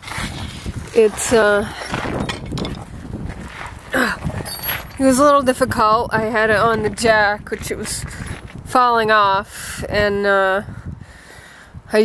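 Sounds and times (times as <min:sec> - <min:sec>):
camera rubbing against jacket: 0:00.0 - 0:05.2.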